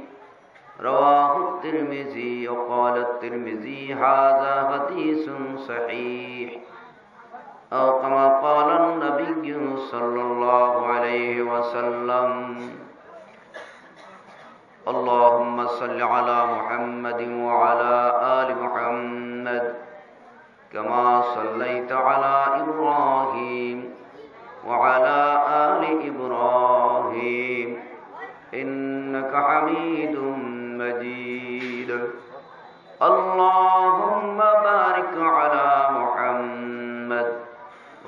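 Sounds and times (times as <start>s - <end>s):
man chanting melodically: 0.0s - 6.8s, 7.7s - 13.0s, 14.8s - 20.0s, 20.7s - 38.0s.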